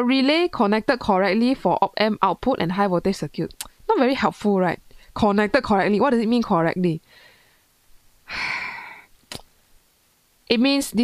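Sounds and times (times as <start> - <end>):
woman sighing: 8.3 - 9.1.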